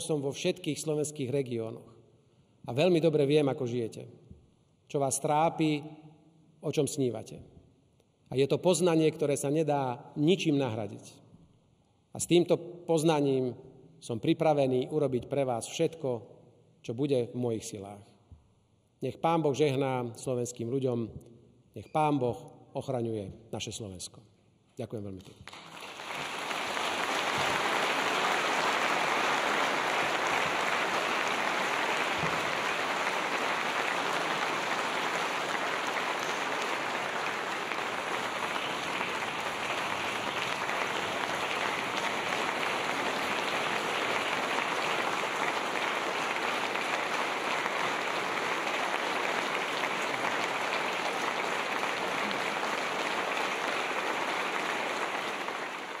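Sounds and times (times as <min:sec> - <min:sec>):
large audience applauding: 0:25.4 - 0:56.0.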